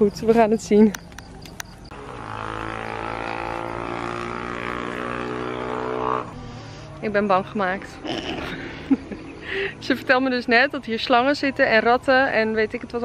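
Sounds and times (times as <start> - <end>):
steady multi-tone drone: 0.9 - 13.0.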